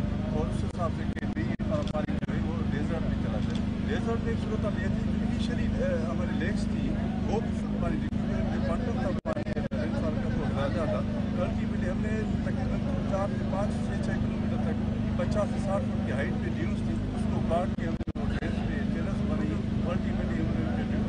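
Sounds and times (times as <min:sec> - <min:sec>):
low hum and rumble: 0:00.0 - 0:21.0
man speaking indistinctly: 0:00.0 - 0:21.0.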